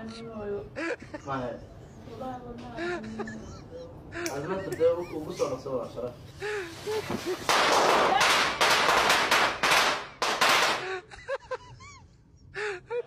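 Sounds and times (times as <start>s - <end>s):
person laughing: 2.8s - 5.6s.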